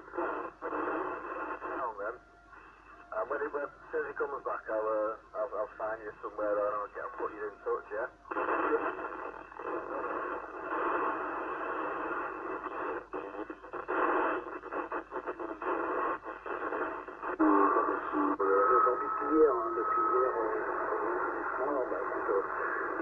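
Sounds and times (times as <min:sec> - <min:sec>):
noisy radio static: 0:00.0 - 0:23.0
faint voice over radio: 0:03.1 - 0:11.3, 0:12.0 - 0:23.0.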